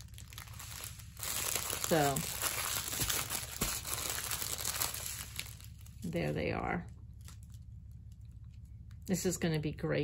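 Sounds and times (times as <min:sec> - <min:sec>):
plastic wrapping crinkling: 0:00.0 - 0:08.9.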